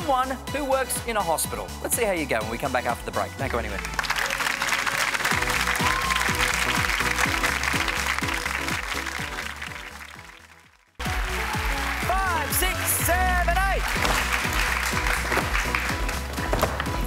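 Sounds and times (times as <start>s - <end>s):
game show theme music: 0.0s - 17.0s
audience applauding: 3.5s - 17.0s.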